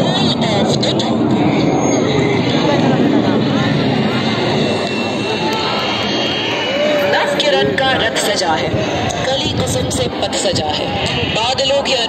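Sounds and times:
crowd voices: 0:00.0 - 0:12.0
jet engines roaring overhead: 0:00.0 - 0:12.0.

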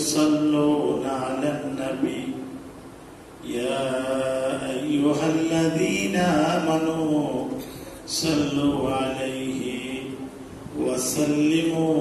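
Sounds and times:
man chanting into a microphone: 0:00.0 - 0:02.6, 0:03.4 - 0:12.0.

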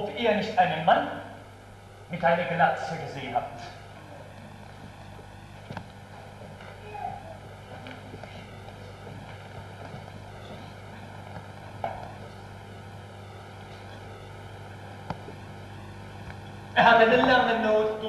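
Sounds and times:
faint stage sounds: 0:00.0 - 0:18.0
mains hum and tape hiss: 0:00.0 - 0:18.0.

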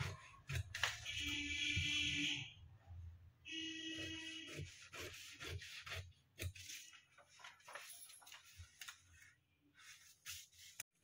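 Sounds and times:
scissors cutting paper: 0:00.0 - 0:01.0.

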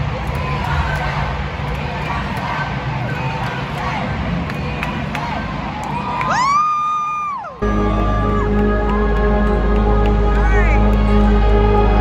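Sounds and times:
concert music with heavy bass: 0:07.6 - 0:12.0.

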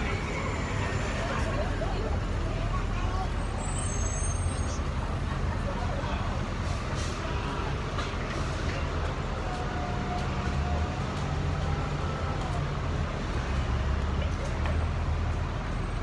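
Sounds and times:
bus diesel engine running: 0:00.0 - 0:16.0
street traffic: 0:00.0 - 0:16.0.

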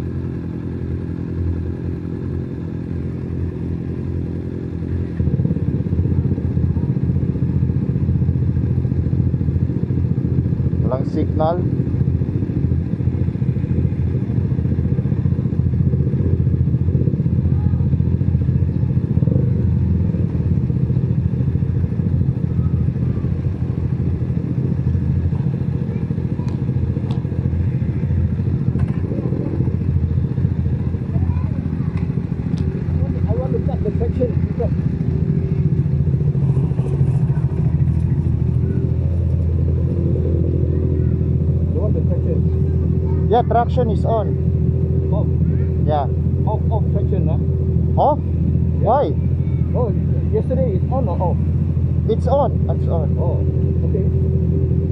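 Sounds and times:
motorcycle engine idling: 0:00.0 - 0:54.9
faint voices: 0:17.2 - 0:54.9.

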